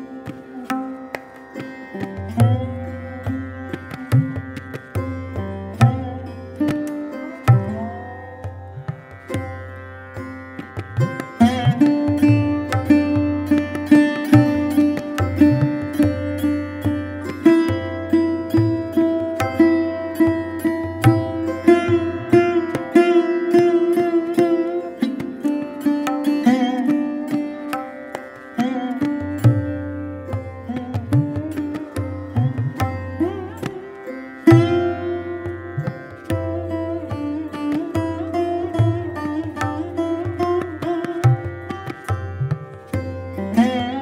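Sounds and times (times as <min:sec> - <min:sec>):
sarod plucked melody: 0:00.0 - 0:44.0
tabla drum strokes: 0:00.0 - 0:44.0.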